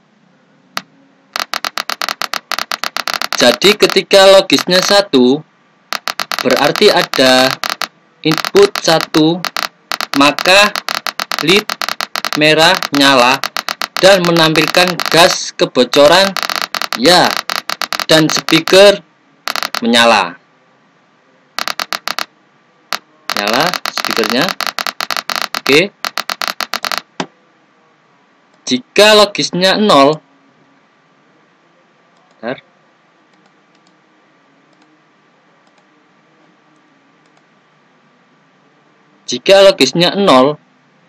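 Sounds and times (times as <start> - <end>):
rapid sharp clicks: 0.8 - 5.0, 5.9 - 20.0, 21.6 - 22.3, 22.9 - 27.3.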